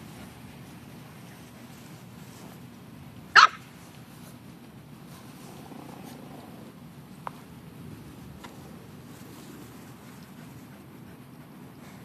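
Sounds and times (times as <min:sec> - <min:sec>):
puppy barking: 0:03.3 - 0:03.6.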